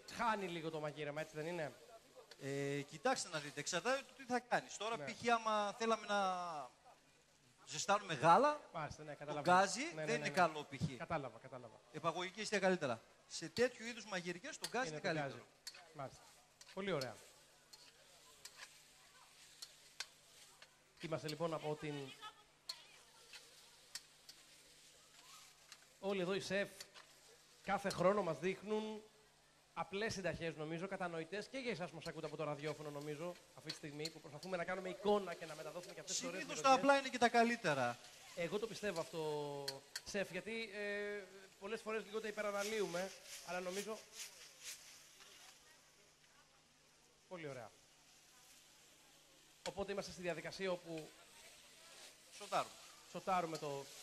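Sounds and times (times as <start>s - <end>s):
chicken sizzling in wok: 0.0s - 8.7s, 9.3s - 54.0s.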